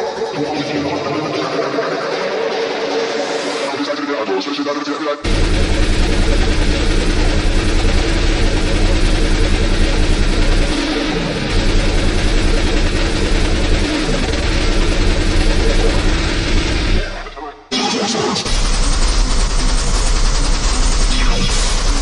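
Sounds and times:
distorted hardcore electronic music: 0:00.0 - 0:22.0.

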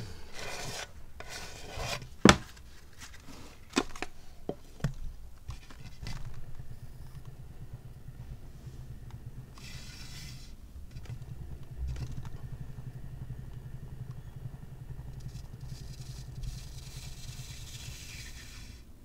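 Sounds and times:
hand scraping spinning turntable: 0:00.0 - 0:03.7, 0:05.4 - 0:19.0
turntable low rumble: 0:00.0 - 0:19.0.

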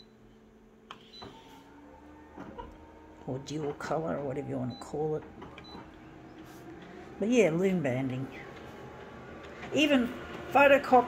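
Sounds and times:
copier beeps: 0:00.0 - 0:00.2, 0:01.0 - 0:01.5, 0:04.5 - 0:06.4
copier motor humming: 0:00.0 - 0:11.0.

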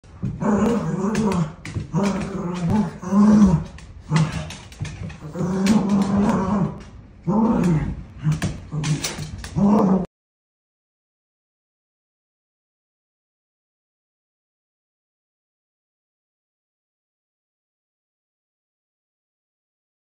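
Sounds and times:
dogs growling: 0:00.1 - 0:10.1.

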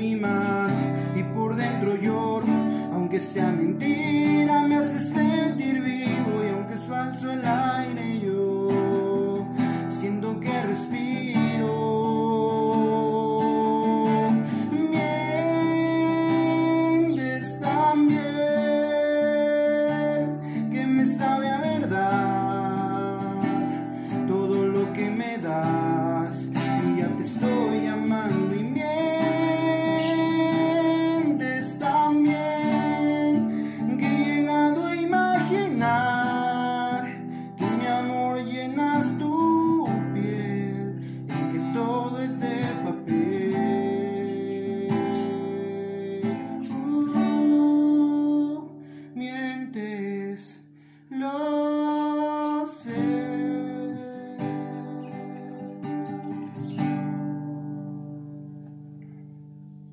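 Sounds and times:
man singing a slow ballad: 0:00.0 - 0:56.4
strummed acoustic guitar: 0:00.0 - 0:59.9.

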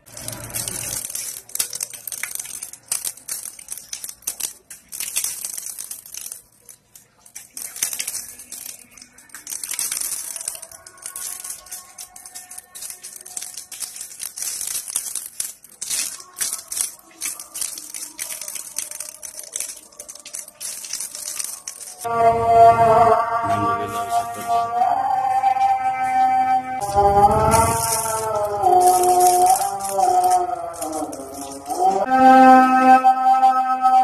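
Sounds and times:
faint distant chanting: 0:00.0 - 0:34.0.

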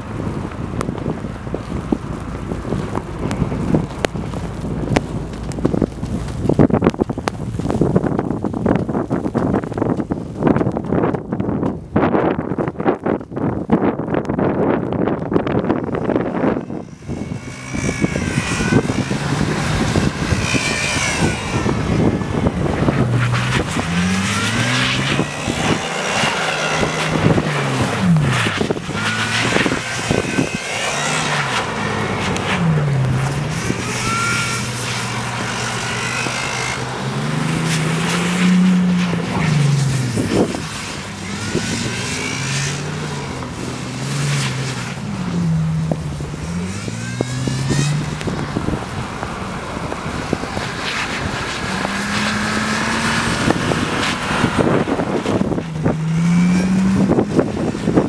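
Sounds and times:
tyres rushing through snow: 0:00.0 - 0:58.0
car engine revving: 0:14.9 - 0:58.0.

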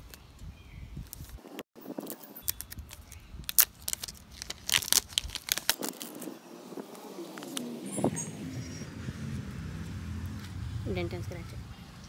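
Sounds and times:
shrink-wrap crackling: 0:02.0 - 0:06.4.

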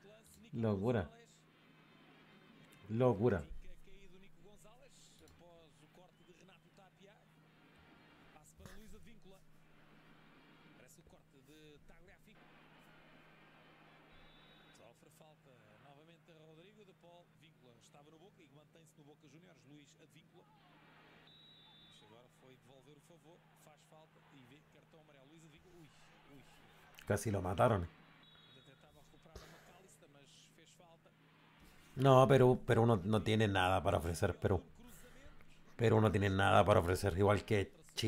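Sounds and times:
faint low hum: 0:00.0 - 0:38.0.

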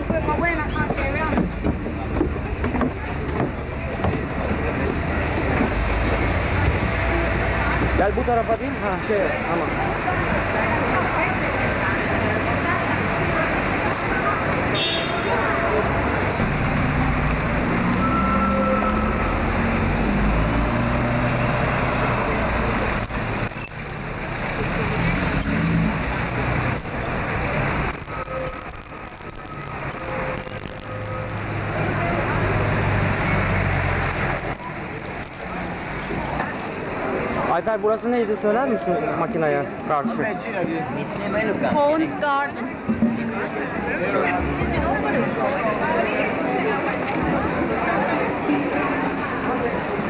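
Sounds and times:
vehicle engines rumbling: 0:00.0 - 0:50.0
voices of passers-by: 0:00.0 - 0:50.0.

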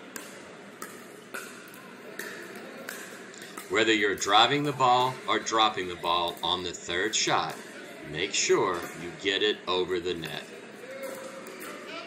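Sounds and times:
indoor hall background noise: 0:00.0 - 0:12.0
paddle hitting plastic ball: 0:00.1 - 0:05.2.

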